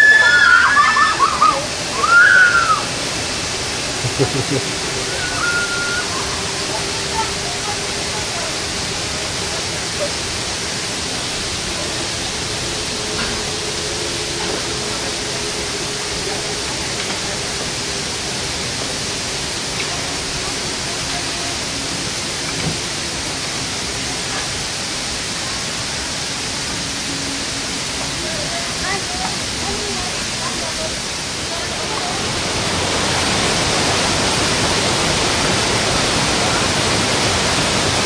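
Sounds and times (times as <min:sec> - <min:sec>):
faint voices: 0:00.0 - 0:38.0
steady rushing noise: 0:00.0 - 0:38.0.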